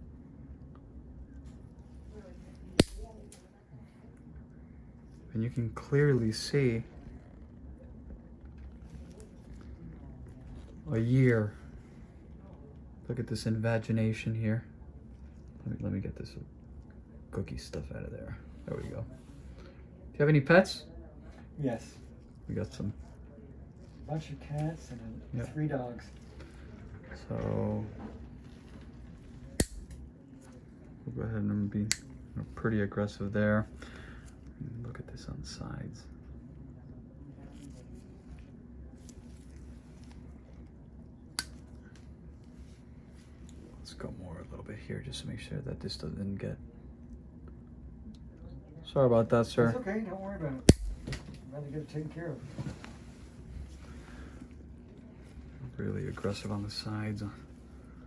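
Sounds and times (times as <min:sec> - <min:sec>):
nail nipper snapping: 0:29.6 - 0:29.9, 0:50.7 - 0:51.0.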